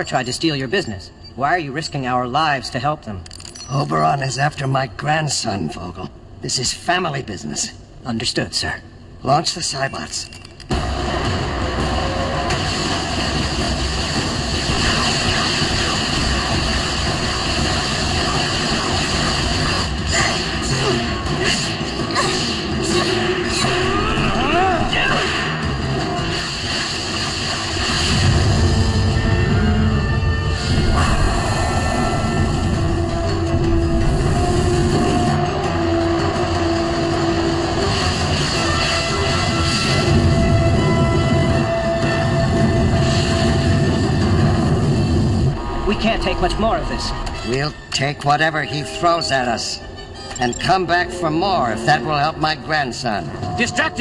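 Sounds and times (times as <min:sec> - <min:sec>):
weapon fire effects: 0:10.7 - 0:29.5, 0:34.4 - 0:47.7
dramatic background music: 0:10.7 - 0:54.0.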